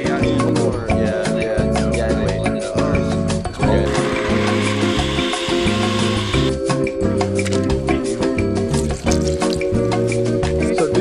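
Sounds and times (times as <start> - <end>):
background music: 0.0 - 11.0
blender grinding food: 3.8 - 6.6.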